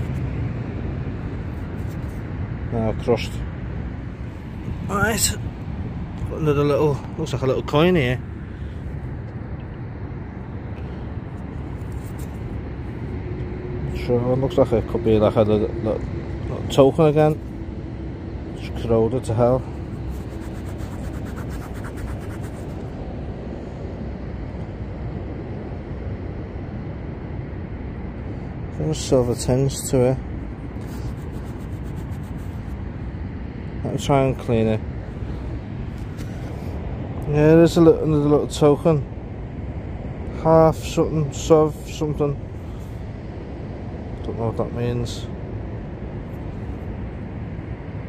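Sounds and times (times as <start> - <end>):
faint scratches: 1.5 - 2.2, 11.8 - 12.4, 19.6 - 22.9, 30.8 - 32.8
thumb rubbing soil off metal: 19.8 - 22.8, 30.8 - 32.6.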